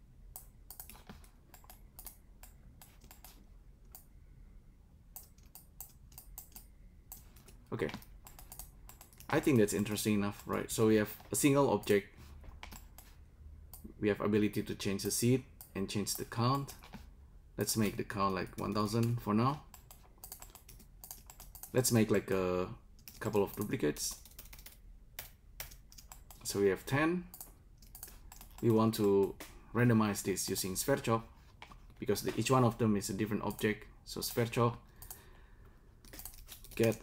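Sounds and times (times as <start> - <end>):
computer keyboard keys clicking: 0.3 - 4.1, 5.2 - 10.6, 12.6 - 13.1, 18.6 - 21.8, 23.0 - 26.5, 27.3 - 29.4, 35.0 - 35.2, 36.0 - 37.0.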